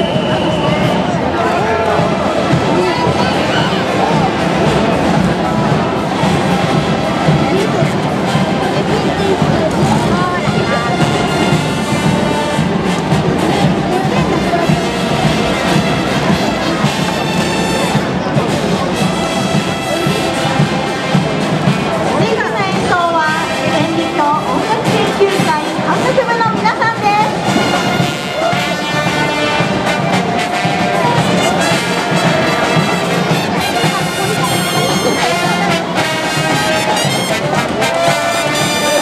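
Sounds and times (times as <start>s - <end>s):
crowd voices: 0.0s - 39.0s
marching brass band: 0.0s - 39.0s.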